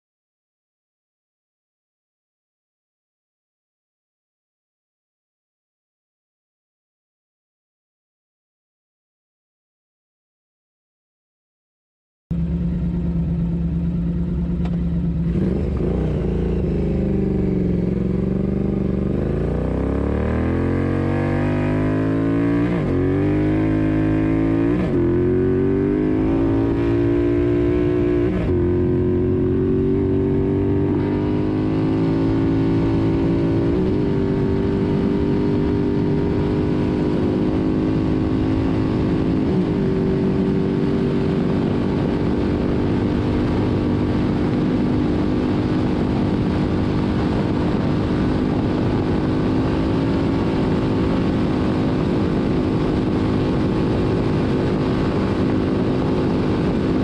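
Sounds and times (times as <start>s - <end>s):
motorcycle engine accelerating: 12.3s - 57.0s.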